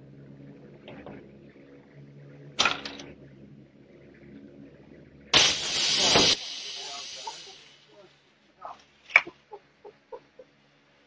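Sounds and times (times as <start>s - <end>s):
canister bursting blast: 5.4s - 7.8s
hiss of escaping gas: 5.4s - 8.0s.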